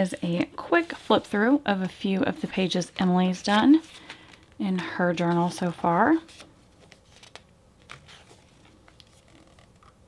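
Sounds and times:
paper pages turning: 3.3 - 4.6, 5.2 - 10.0.

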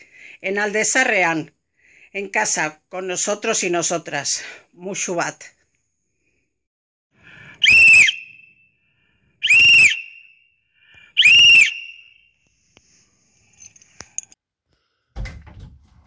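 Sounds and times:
shrill whistle blasts: 7.6 - 12.4.

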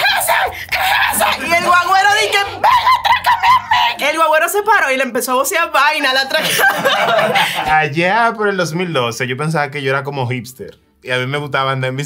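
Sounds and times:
woman's wordless high-pitched cry: 0.0 - 4.2.

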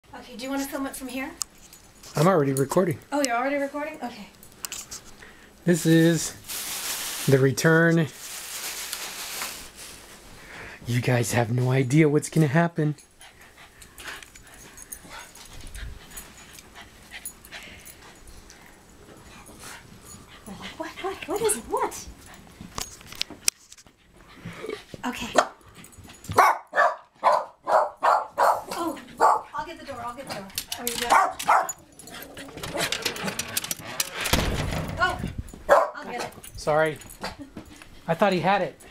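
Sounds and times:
dog paws clicking and knocking: 28.1 - 38.9
dogs whimpering: 30.4 - 33.9.

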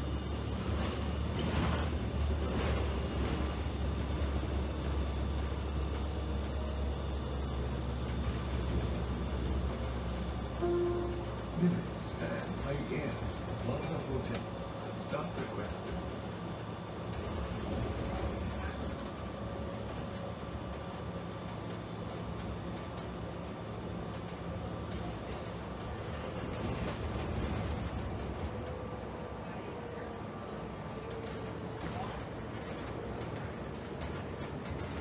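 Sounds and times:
bus drivetrain hum with whine: 0.0 - 35.0.

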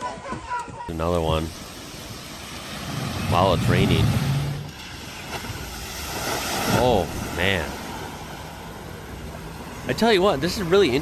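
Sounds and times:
vehicle splashing through flood water: 1.4 - 11.0.

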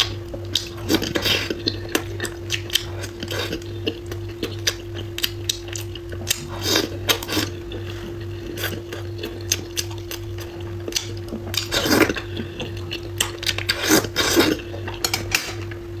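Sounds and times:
chewing and smacking: 0.0 - 15.8.

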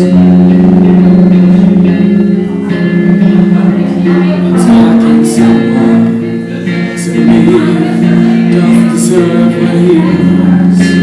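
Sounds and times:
solo song with acoustic guitar: 0.0 - 11.0.

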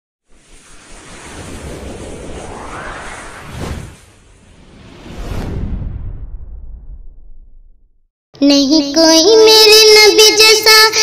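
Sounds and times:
whoosh: 0.3 - 8.1
low rumble: 0.4 - 8.1.

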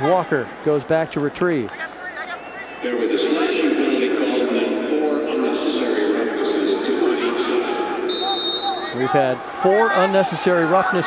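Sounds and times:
crowd shouting and cheering: 0.0 - 11.0
referee's whistle: 2.2 - 2.9, 8.1 - 9.0.

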